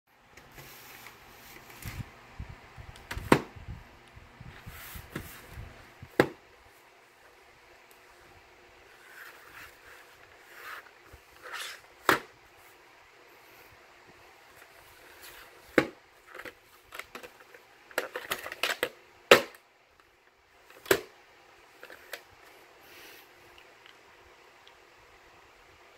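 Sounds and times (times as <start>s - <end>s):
plastic case knocking on desk: 6.2s - 6.4s.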